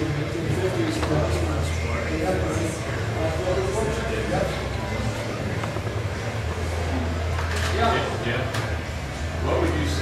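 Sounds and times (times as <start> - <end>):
indistinct talking: 0.0 - 10.0
steady low hum: 0.0 - 10.0.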